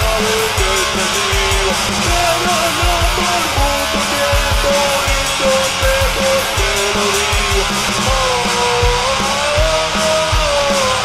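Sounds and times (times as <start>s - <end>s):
distorted electric guitars: 0.0s - 11.0s
rock drums: 0.0s - 11.0s.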